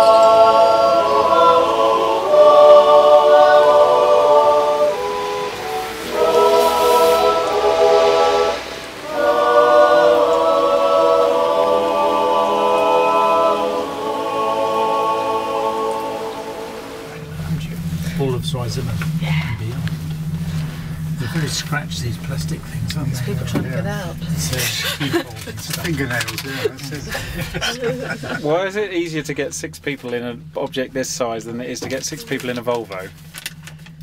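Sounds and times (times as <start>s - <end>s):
voices yodelling in harmony: 0.0s - 17.4s
steady hiss: 0.0s - 34.0s.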